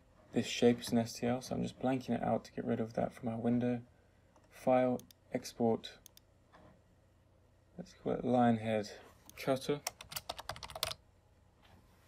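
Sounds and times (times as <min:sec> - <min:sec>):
keyboard typing: 0:09.8 - 0:11.0.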